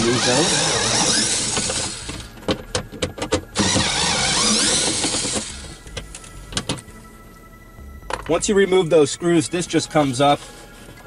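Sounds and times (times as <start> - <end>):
cordless drill running: 3.6 - 5.8.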